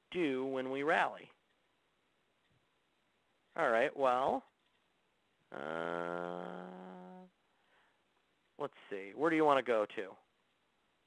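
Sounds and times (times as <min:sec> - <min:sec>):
man's drawn-out hesitation: 0:05.5 - 0:07.5.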